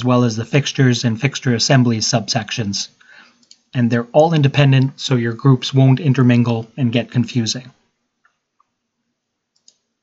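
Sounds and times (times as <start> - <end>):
computer mouse click: 9.5 - 9.9.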